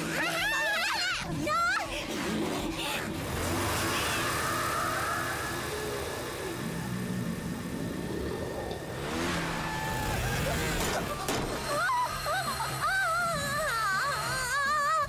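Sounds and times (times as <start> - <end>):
cartoon scooter engine revving: 0.0 - 15.0.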